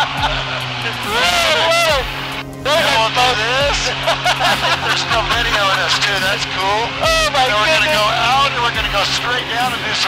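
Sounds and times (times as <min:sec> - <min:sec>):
people laughing and whooping: 0:00.0 - 0:02.1, 0:03.5 - 0:06.3
plane engine and propeller drone: 0:00.0 - 0:10.0.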